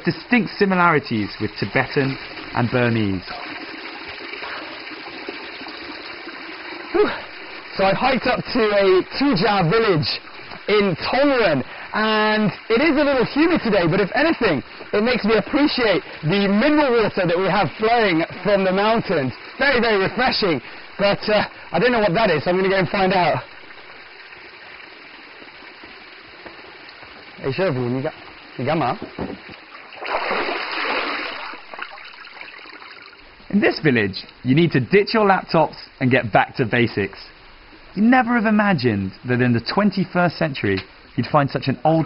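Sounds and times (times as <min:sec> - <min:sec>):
water stream falling onto stone: 0:00.5 - 0:24.2, 0:25.2 - 0:33.2.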